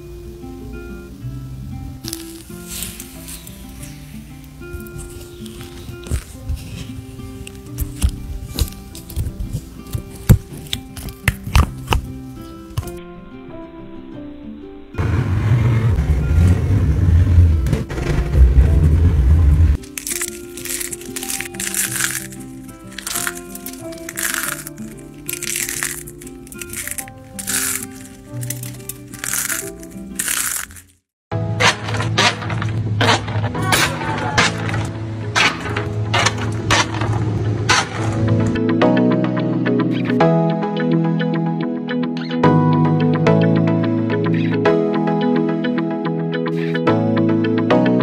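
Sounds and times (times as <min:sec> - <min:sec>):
scraper scraping wax off wood: 0:04.8 - 0:12.9, 0:19.9 - 0:30.9, 0:31.6 - 0:38.5
hard candy clattering on table: 0:19.8 - 0:31.0, 0:31.6 - 0:38.5.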